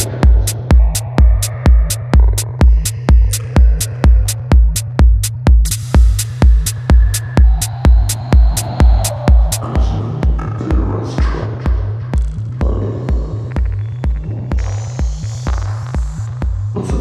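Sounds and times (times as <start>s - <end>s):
techno kick drum and bass: 0.0s - 17.0s
hazy synth textures: 5.7s - 17.0s.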